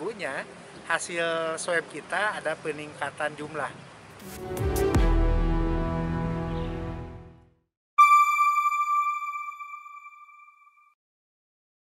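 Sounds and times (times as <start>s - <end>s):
background music: 4.2s - 10.5s
electronic ping chime: 8.0s - 11.0s.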